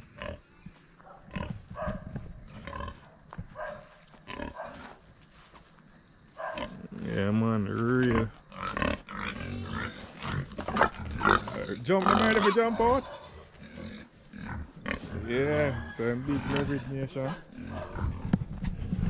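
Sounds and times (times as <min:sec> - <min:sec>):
pigs grunting: 0:00.0 - 0:05.0, 0:06.4 - 0:19.0.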